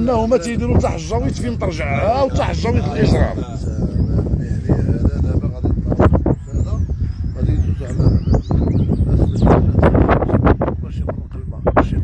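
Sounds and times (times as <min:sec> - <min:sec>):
small birds chirping: 0:00.0 - 0:12.0
wind on microphone: 0:00.0 - 0:12.0.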